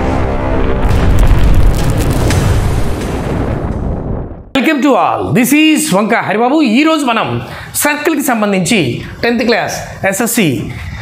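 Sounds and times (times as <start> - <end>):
sharp crackling hits: 0.0 - 4.5
deep boom: 0.0 - 4.6.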